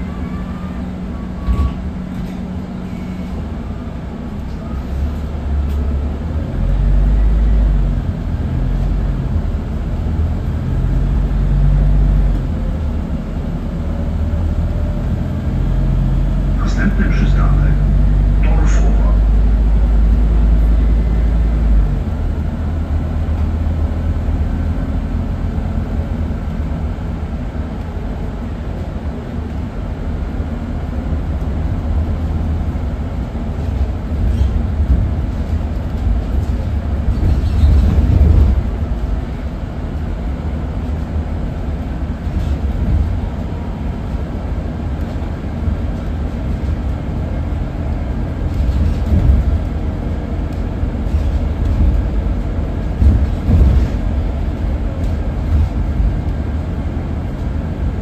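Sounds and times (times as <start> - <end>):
bus engine droning: 0.0 - 58.0
road rumble: 0.0 - 58.0.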